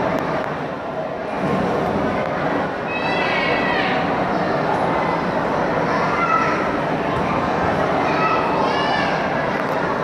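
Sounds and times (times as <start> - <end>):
crowd chatter: 0.0 - 10.0
child's high-pitched squeal: 8.1 - 9.3.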